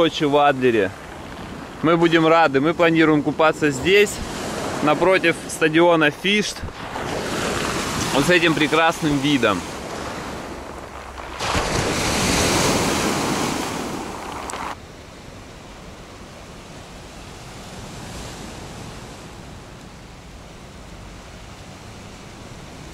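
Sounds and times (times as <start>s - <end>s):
waves washing over pebbles: 0.0s - 14.8s
sea surf: 0.0s - 22.9s.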